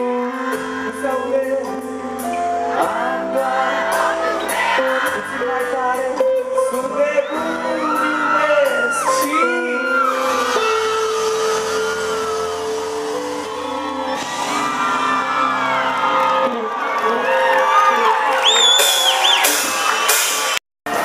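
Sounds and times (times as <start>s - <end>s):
live pop-rock band music: 0.0s - 21.0s
crowd shouting and whooping: 2.9s - 5.6s, 7.0s - 21.0s
high whoop or whistle: 17.3s - 20.6s.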